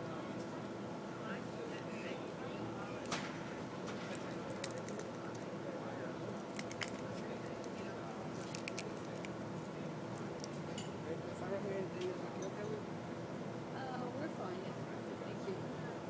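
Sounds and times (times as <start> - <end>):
murmur of people talking: 0.0 - 16.0.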